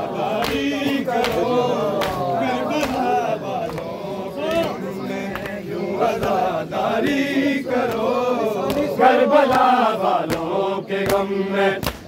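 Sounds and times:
men chanting in unison: 0.0s - 12.0s
chest-beating slaps: 0.4s - 6.4s, 7.8s - 12.0s.

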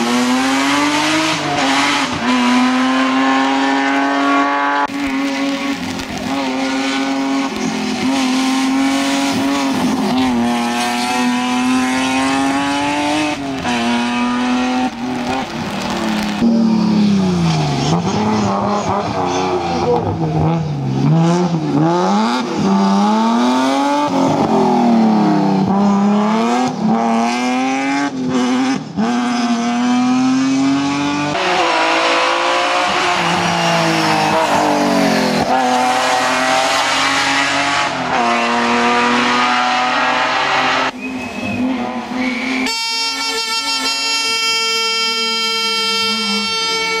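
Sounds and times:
race car engine revving: 0.0s - 41.0s.

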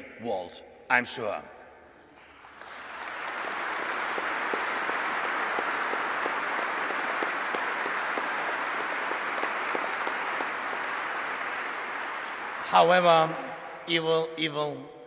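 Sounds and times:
audience applauding: 2.2s - 13.4s.

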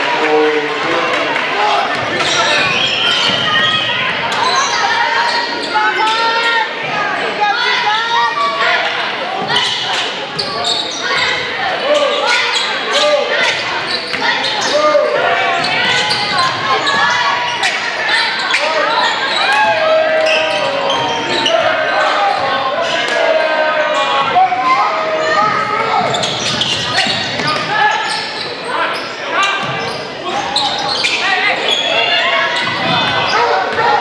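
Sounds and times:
people shouting in a gym: 0.0s - 34.0s.

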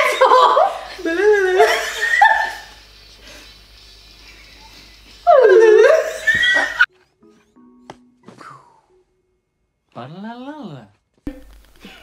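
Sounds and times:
women laughing loudly: 0.0s - 2.8s, 5.3s - 6.9s.

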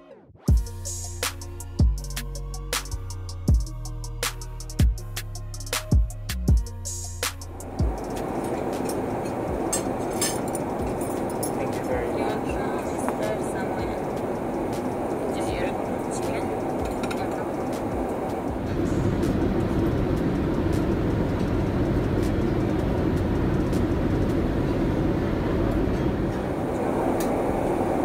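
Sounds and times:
airliner cabin rushing hum: 7.6s - 28.0s.

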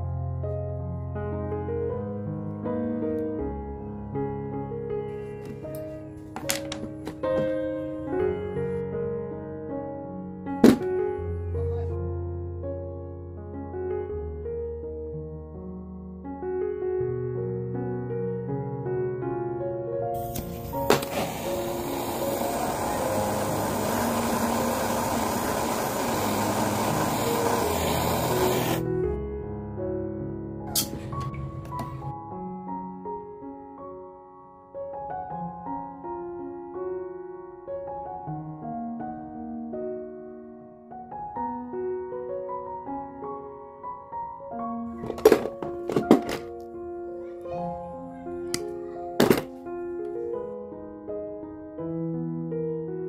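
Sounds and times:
soft piano music: 0.0s - 53.0s
pliers knocking on stone bench: 6.4s - 7.6s
torch flame hissing: 20.2s - 28.9s.

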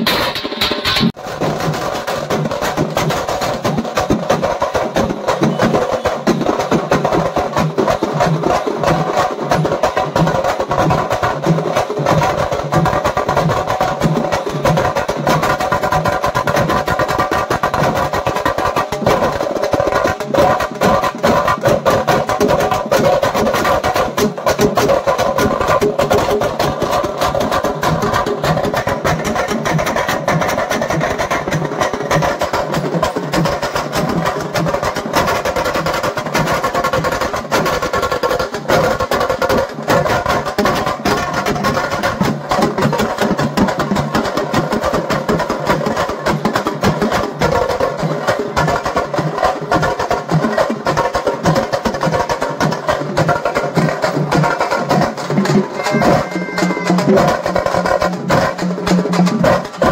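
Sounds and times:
procession drums: 50.4s - 59.9s.

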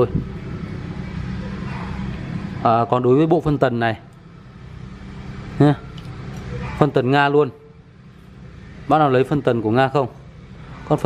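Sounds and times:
low background hum: 0.0s - 11.0s
man speaking: 5.6s - 6.0s, 8.9s - 10.2s.

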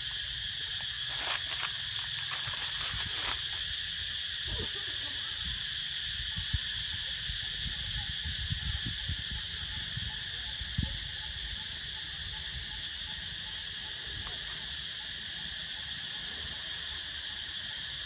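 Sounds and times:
insect chorus drone: 0.0s - 18.0s.

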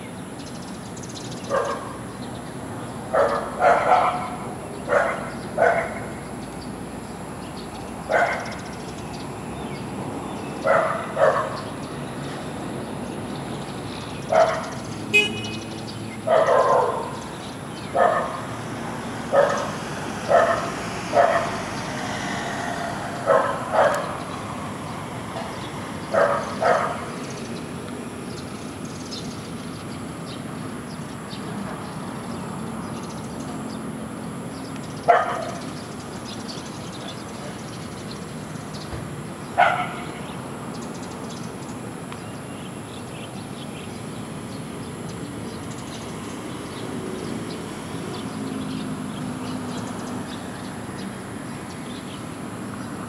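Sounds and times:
dog barking: 1.4s - 2.0s, 3.1s - 6.1s, 8.1s - 8.6s, 10.6s - 11.7s, 14.3s - 14.8s, 16.3s - 17.2s, 17.9s - 18.5s, 19.3s - 21.7s, 23.2s - 24.3s, 25.4s - 27.1s, 35.1s - 35.7s, 39.6s - 40.1s.

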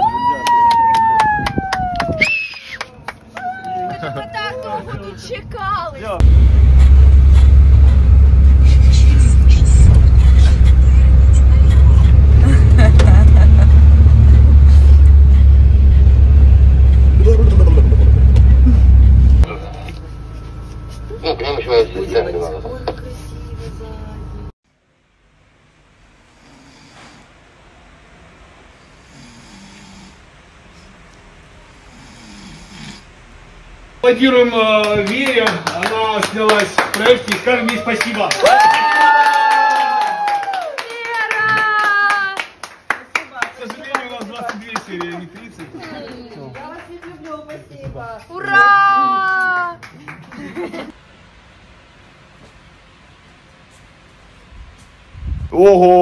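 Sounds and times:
van engine and road rumble: 0.0s - 56.0s
man snoring: 26.3s - 27.3s, 29.0s - 30.3s, 31.8s - 33.1s.

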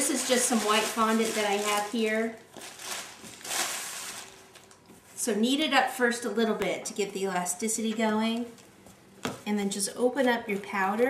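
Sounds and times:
plastic bag rustling: 0.0s - 5.3s.

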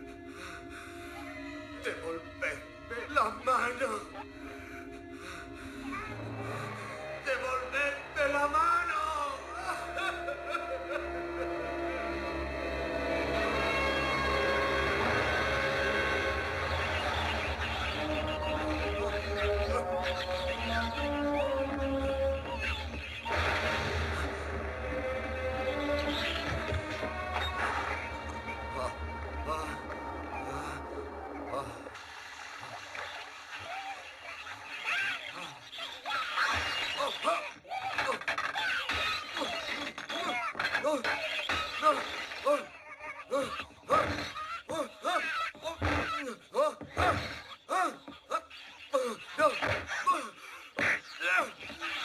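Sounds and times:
sustained horror drone: 4.4s - 32.6s
man grunting and crying out: 42.5s - 44.1s.

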